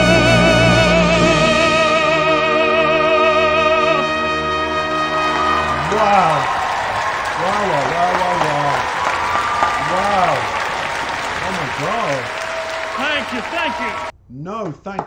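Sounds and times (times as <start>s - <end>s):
audience applauding: 4.6s - 14.1s
man exclaiming: 5.8s - 6.6s, 7.4s - 8.9s, 9.8s - 10.6s, 11.4s - 14.1s.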